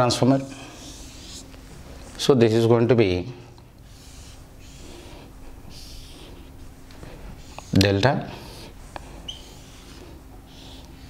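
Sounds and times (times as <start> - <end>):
faint steady hum: 0.0 - 11.0
marker pen scratching on whiteboard: 0.6 - 1.7, 3.8 - 11.0.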